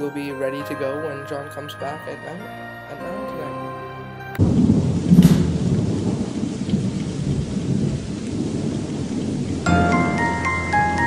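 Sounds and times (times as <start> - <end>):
rain: 0.0 - 11.0
rolling thunder rumble: 4.4 - 11.0
thunder crack: 4.4 - 11.0.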